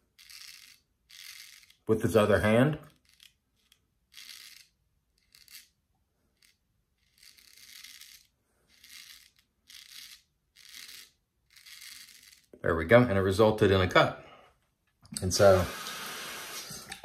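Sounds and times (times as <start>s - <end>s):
razor scraping stubble: 6.3s - 12.5s.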